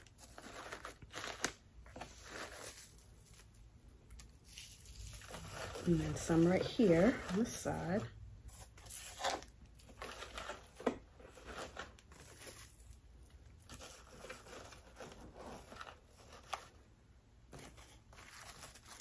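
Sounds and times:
paper shred rustling: 0:00.0 - 0:16.8, 0:17.5 - 0:19.0
paper crackles: 0:17.5 - 0:19.0.

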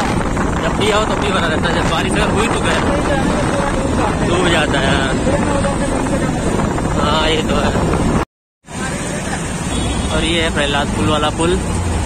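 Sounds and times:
wind rumbling on microphone: 0:00.0 - 0:08.2
motorbike road noise: 0:00.0 - 0:12.0.

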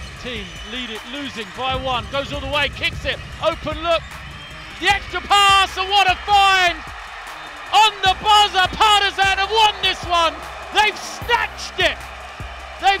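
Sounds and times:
arena crowd noise: 0:00.0 - 0:13.0
person shouting excitedly: 0:07.7 - 0:12.0.

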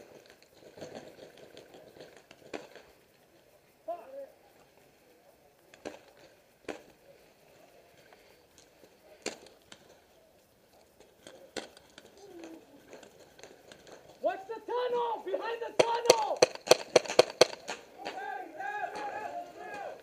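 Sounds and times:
distant shout: 0:14.2 - 0:16.6, 0:17.5 - 0:20.0.

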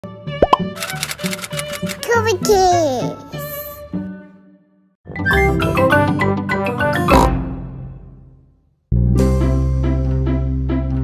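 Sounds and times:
rising plop sound effects: 0:00.4 - 0:00.7.

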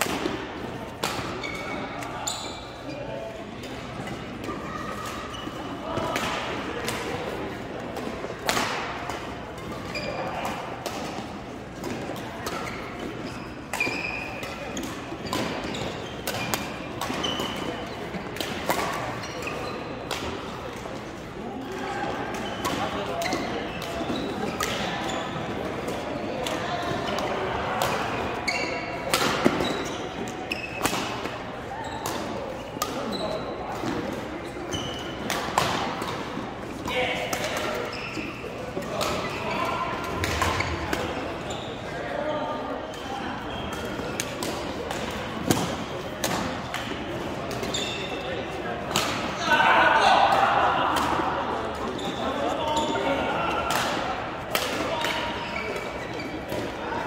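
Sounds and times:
background voices in large hall: 0:00.0 - 0:57.0.

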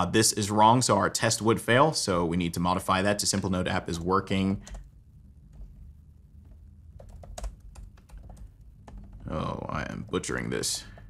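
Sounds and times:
computer keyboard typing: 0:04.6 - 0:04.9, 0:06.5 - 0:11.0.

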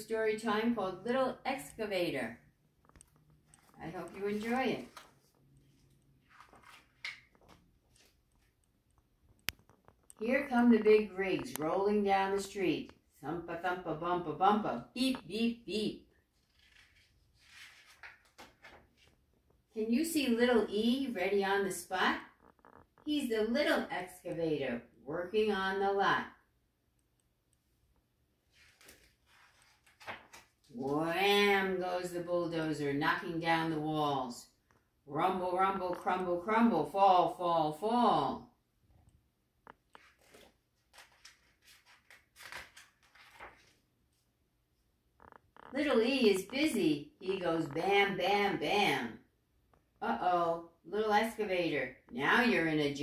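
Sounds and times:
paper page rustling: 0:03.0 - 0:08.6, 0:16.3 - 0:19.4, 0:28.4 - 0:30.9, 0:39.9 - 0:44.3.

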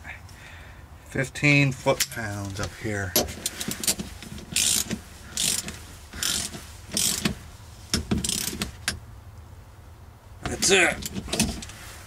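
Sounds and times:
ratchet wrench clicking: 0:03.8 - 0:09.0.

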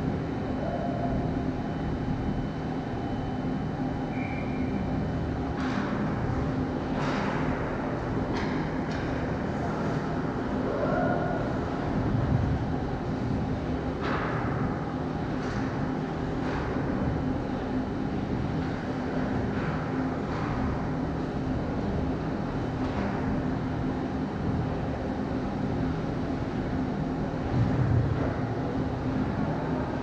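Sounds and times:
machinery hum and rumble: 0:00.0 - 0:30.0.

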